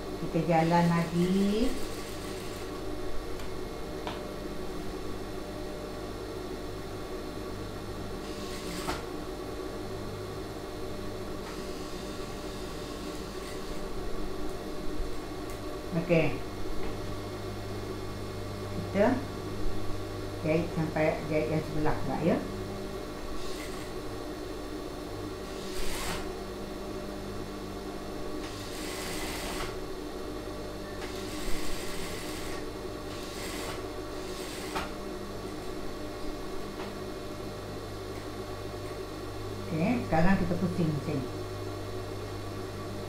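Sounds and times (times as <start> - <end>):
sewing machine stitching: 8.3 - 9.0, 25.5 - 26.3, 28.5 - 29.8.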